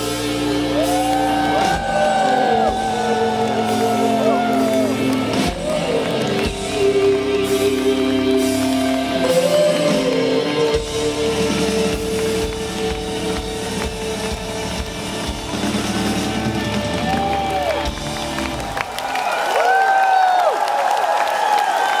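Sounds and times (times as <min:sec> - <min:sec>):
rock band playing: 0:00.0 - 0:19.1
crowd cheering and applauding: 0:00.0 - 0:22.0.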